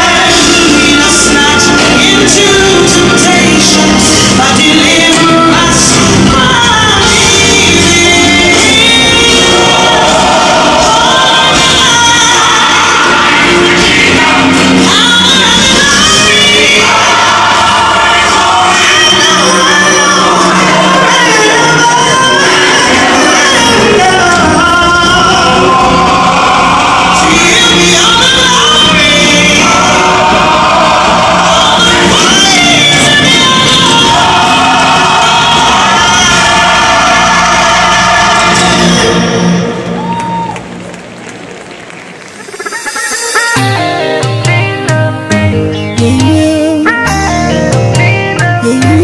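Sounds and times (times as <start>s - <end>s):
gospel choir singing: 0.0s - 40.0s
audience crowd noise: 0.0s - 45.4s.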